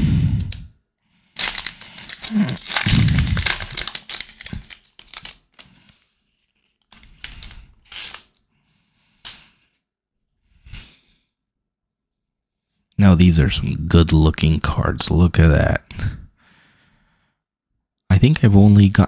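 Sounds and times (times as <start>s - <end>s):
plastic wrapper tearing and crinkling: 1.4s - 8.4s.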